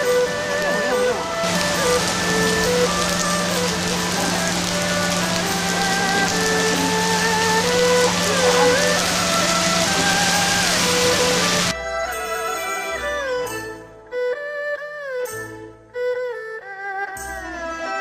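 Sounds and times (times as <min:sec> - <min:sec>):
heavy rain on street: 0:00.0 - 0:11.7
bowed erhu melody: 0:00.0 - 0:18.0.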